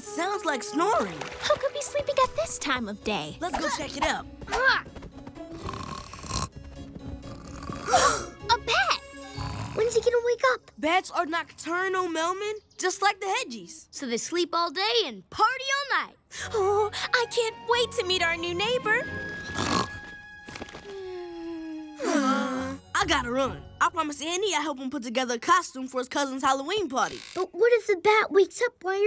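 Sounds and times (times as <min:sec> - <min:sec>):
light background music: 0:00.0 - 0:13.9, 0:16.3 - 0:26.8
cartoon snoring: 0:05.5 - 0:06.6, 0:07.2 - 0:08.4, 0:09.2 - 0:10.1, 0:19.4 - 0:20.1.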